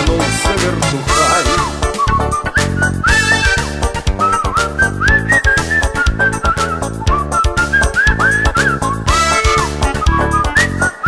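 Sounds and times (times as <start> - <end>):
accordion: 0.0 - 11.0
acoustic guitar: 0.0 - 11.0
bass with steady beat: 0.0 - 11.0
whistled melody: 1.1 - 11.0.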